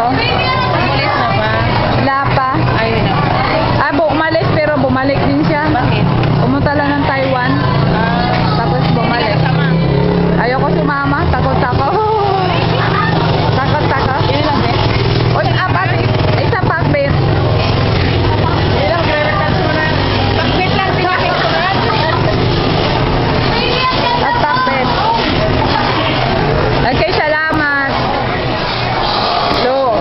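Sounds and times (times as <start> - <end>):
voices talking: 0.0 - 30.0.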